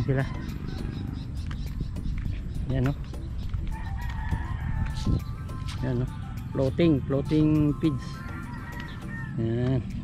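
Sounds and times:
rooster crowing: 3.8s - 5.2s, 8.0s - 9.4s.

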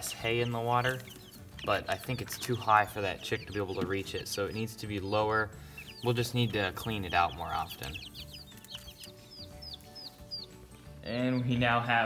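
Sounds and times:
chicks peeping: 0.0s - 11.9s.

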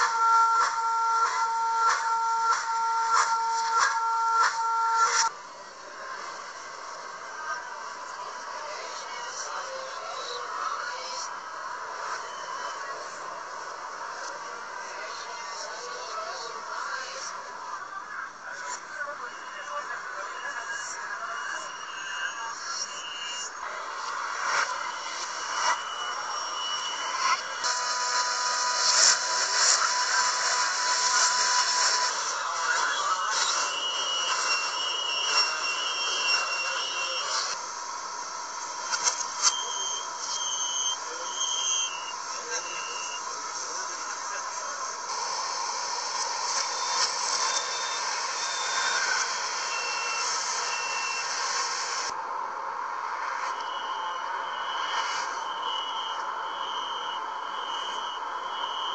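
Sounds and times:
steady buzzer tone: 0.0s - 5.3s, 20.3s - 23.6s, 24.6s - 45.1s, 45.8s - 52.1s, 53.6s - 58.9s
train and station noise: 0.0s - 58.9s
short high electronic beeps: 24.5s - 37.6s, 38.8s - 44.6s, 46.4s - 51.6s.

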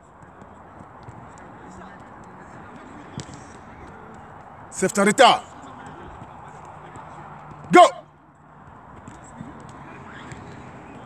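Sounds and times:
ball touches on artificial turf: 0.2s - 4.3s.

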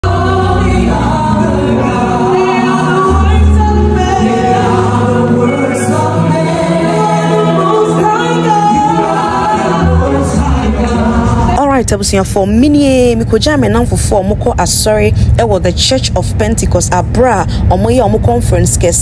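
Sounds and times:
gospel choir singing with band: 0.0s - 11.7s.

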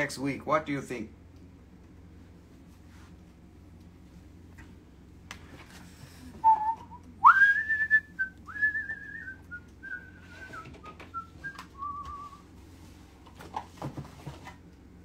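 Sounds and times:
person whistling a tune: 6.4s - 12.4s.

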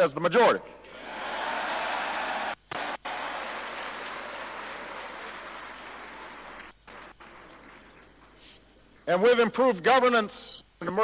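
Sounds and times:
audience applauding: 1.0s - 8.3s.

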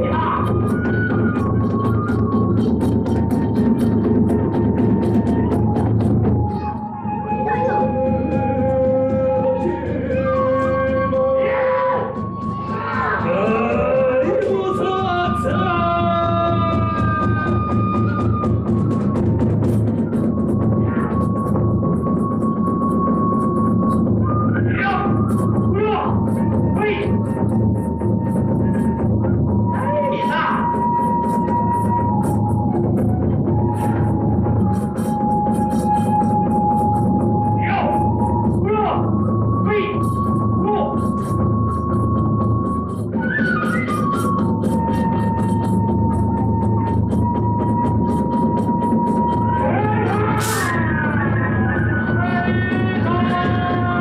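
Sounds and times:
continuous drumming: 0.0s - 54.0s
high flute note: 5.1s - 12.8s, 20.6s - 51.1s.

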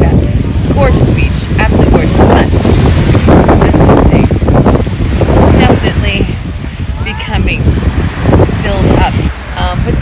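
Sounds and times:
surf breaking: 0.0s - 10.0s
wind buffeting microphone: 0.0s - 10.0s.

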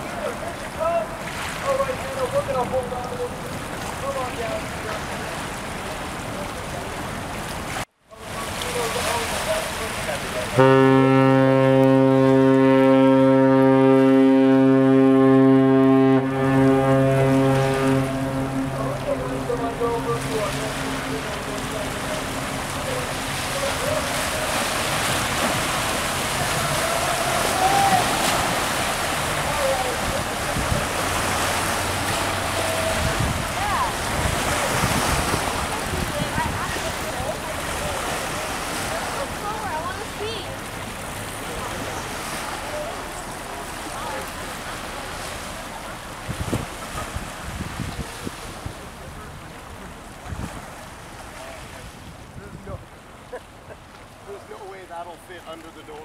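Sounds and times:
water noise: 0.0s - 56.0s
outdoor wind: 11.2s - 54.6s
faint voices: 16.3s - 31.5s
wind buffeting microphone: 30.0s - 37.8s, 46.1s - 50.9s.

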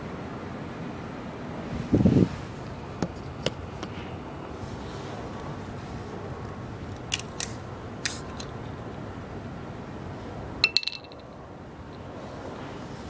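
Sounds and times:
steady outdoor noise: 0.0s - 13.0s
glass bottle clinking rattle: 10.6s - 11.3s.

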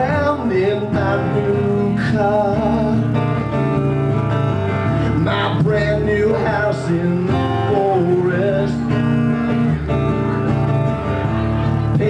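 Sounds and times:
person singing: 0.0s - 3.3s, 5.0s - 9.8s
acoustic guitar strumming chords: 0.0s - 12.0s.

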